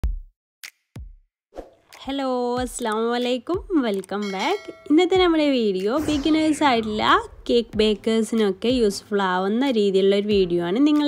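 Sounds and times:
drum machine deep thump: 0.0s - 0.3s, 6.0s - 8.1s.

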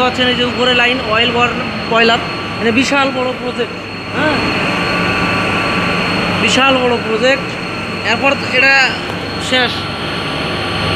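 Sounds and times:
oil burner running: 0.0s - 10.9s.

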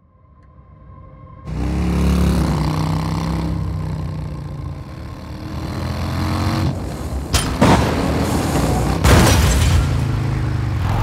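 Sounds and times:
car engine running at speed: 1.5s - 11.0s
motorcycle engine: 1.5s - 11.0s.

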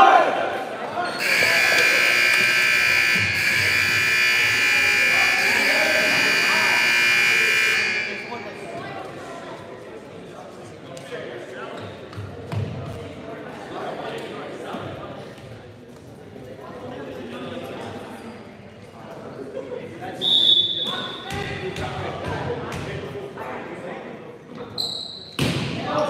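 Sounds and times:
murmur of voices: 0.0s - 26.0s
scoreboard buzzer blare: 1.2s - 8.8s.

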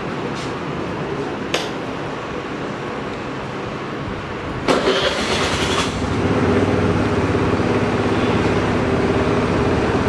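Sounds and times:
scooter engine humming: 4.9s - 10.0s.

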